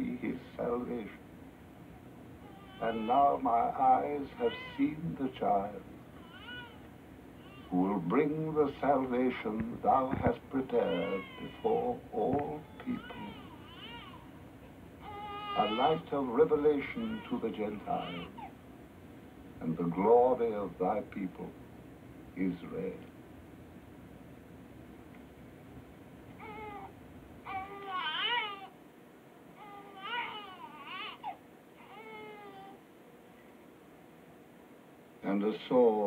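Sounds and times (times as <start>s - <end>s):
newborn baby crying: 2.4s - 5.0s, 6.1s - 7.8s, 10.7s - 14.4s, 15.0s - 18.6s, 26.4s - 28.8s, 29.6s - 32.8s.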